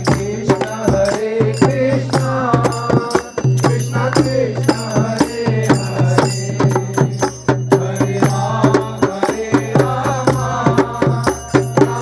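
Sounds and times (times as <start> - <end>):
hand claps: 0.0 - 4.9
group devotional chanting: 0.0 - 12.0
percussion beat: 0.0 - 12.0.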